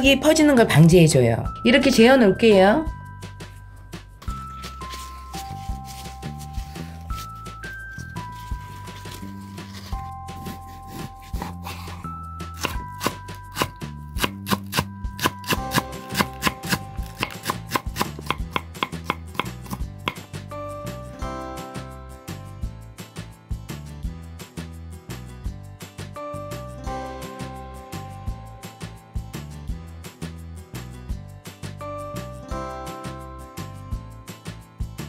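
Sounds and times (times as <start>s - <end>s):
background music: 0.0s - 35.0s
knife chopping on wooden board: 10.4s - 20.3s.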